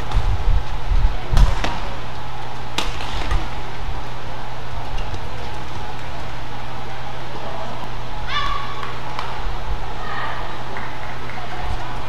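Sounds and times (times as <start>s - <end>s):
low hum of indoor hall: 0.0s - 12.0s
racket striking shuttlecock: 2.7s - 3.6s, 8.4s - 9.4s.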